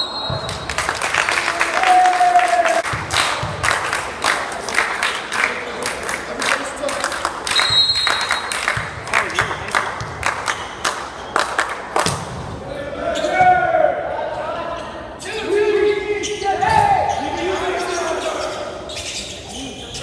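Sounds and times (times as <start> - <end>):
volleyball smacking: 12.0 - 12.4.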